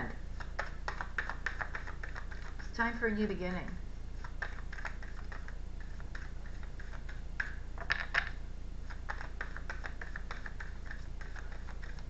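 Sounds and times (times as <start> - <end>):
steady low hum: 0.0 - 12.0
cards being shuffled by hand: 0.3 - 2.6, 4.2 - 12.0.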